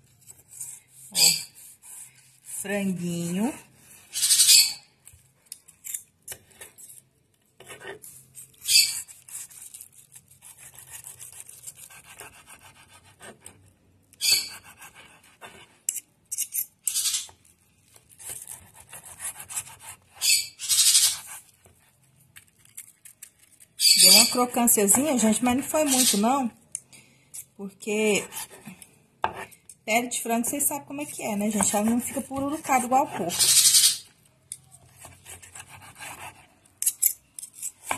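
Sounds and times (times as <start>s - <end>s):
knife slicing chicken on wooden board: 8.9s - 13.5s, 18.2s - 20.0s.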